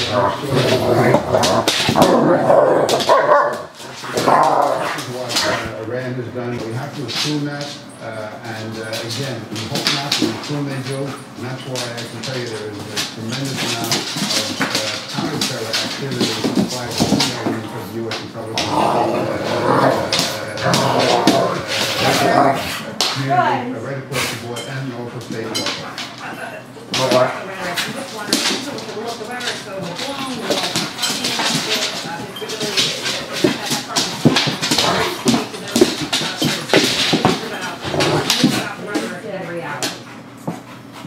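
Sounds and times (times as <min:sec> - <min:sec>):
dogs growling: 0:00.0 - 0:05.9, 0:13.4 - 0:23.2, 0:30.2 - 0:41.0.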